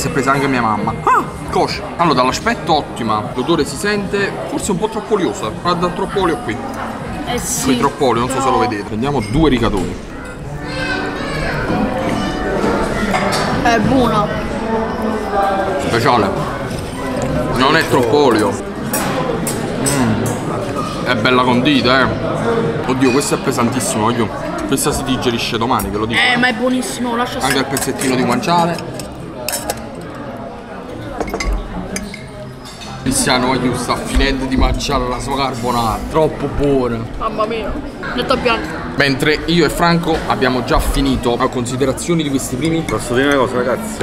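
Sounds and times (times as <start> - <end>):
indistinct background voices: 0.8 - 25.9
cutlery clinking against plates: 11.7 - 13.6, 16.6 - 21.1, 27.4 - 34.4, 42.1 - 43.6.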